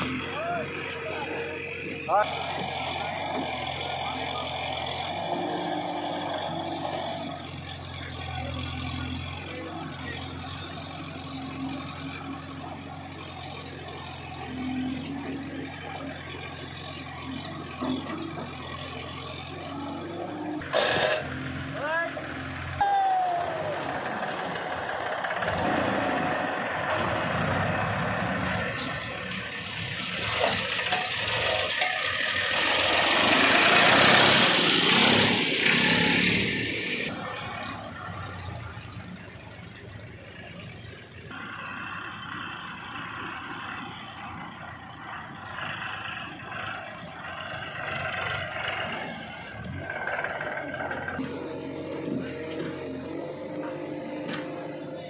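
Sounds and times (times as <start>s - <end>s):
backhoe loader loading soil: 0.0s - 22.8s, 46.5s - 55.0s
diesel tractor engines running: 0.0s - 55.0s.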